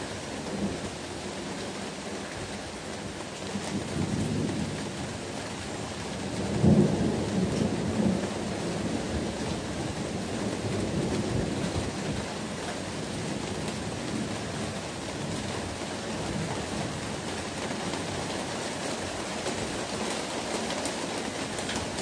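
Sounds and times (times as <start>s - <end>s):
thunder rumbling: 3.6s - 15.5s.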